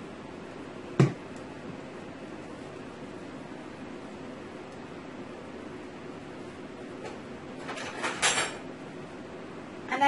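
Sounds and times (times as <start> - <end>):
plastic jar knocking on counter: 1.0 - 1.2.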